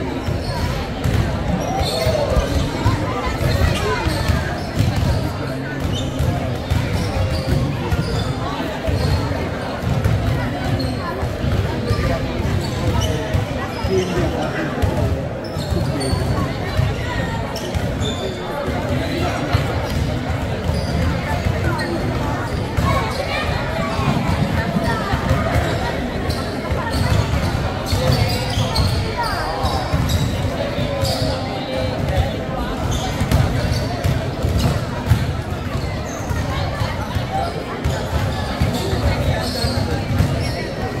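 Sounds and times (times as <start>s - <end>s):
basketballs bouncing on wood floor: 0.6s - 4.2s, 4.8s - 5.2s, 32.9s - 36.4s.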